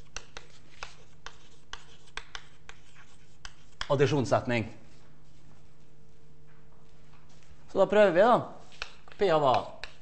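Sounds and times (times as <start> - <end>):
chalk tapping and scratching: 0.0 - 4.3, 8.6 - 10.0.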